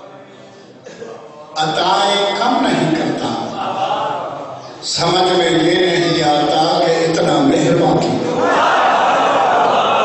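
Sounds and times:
man chanting melodically: 1.4s - 3.9s, 4.7s - 8.4s.

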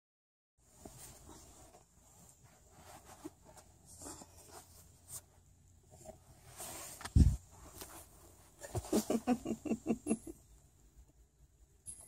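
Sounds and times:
blanket fabric rustling: 0.6s - 9.6s.

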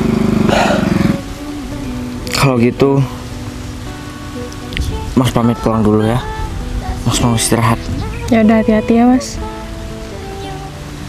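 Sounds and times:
small engine running: 0.0s - 1.4s.

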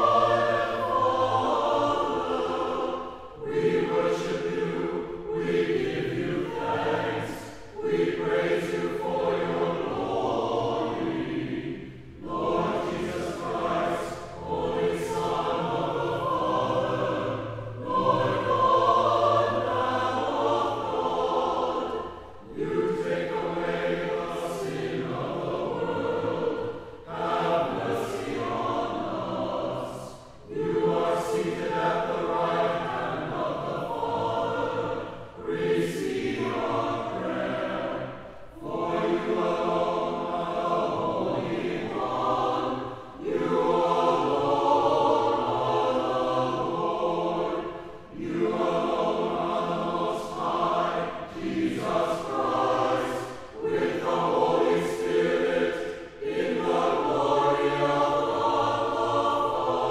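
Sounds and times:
choir singing sacred music: 0.0s - 59.9s.

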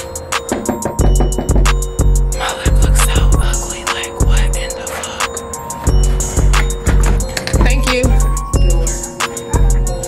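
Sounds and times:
deep bass hits: 0.7s - 4.5s, 5.9s - 8.9s.

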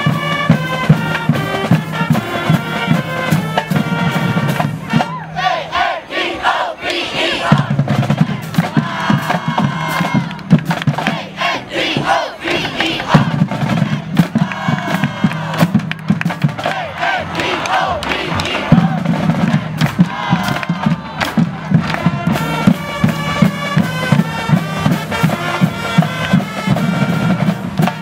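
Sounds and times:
held low brass notes: 0.0s - 5.2s, 7.3s - 28.0s
marching band shouting a chant: 0.0s - 28.0s
drum hits: 7.5s - 28.0s.

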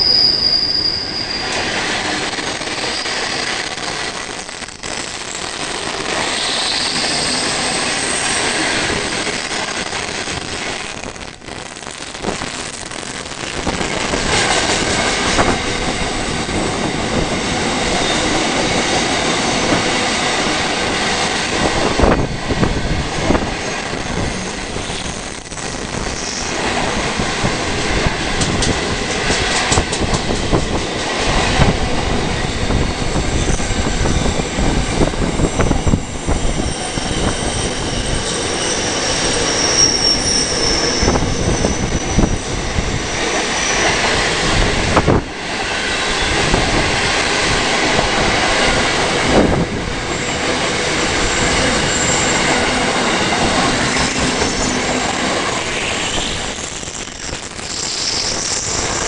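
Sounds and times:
high wheel squeal: 0.0s - 1.8s, 2.7s - 3.7s, 6.2s - 8.6s, 26.1s - 26.6s, 36.4s - 44.0s, 50.1s - 59.0s
steel wheels rumbling on rail: 0.0s - 59.0s.

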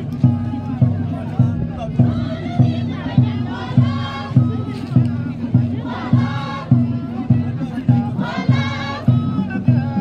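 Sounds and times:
steady low drumbeat: 0.0s - 10.0s
crowd singing together: 2.0s - 10.0s.

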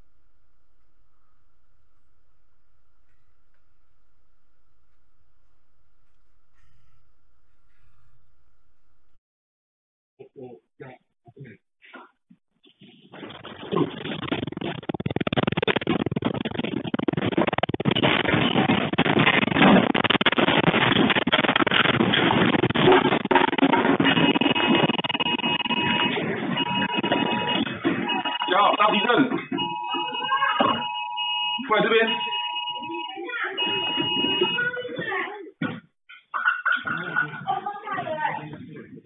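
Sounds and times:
room contents rattling and clattering: 12.6s - 25.4s
two-tone electronic alarm beeping: 24.1s - 34.8s.

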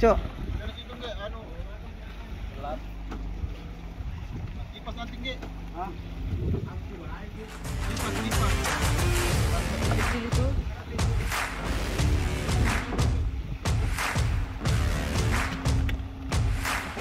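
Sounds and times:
boat machinery humming: 0.0s - 17.0s.

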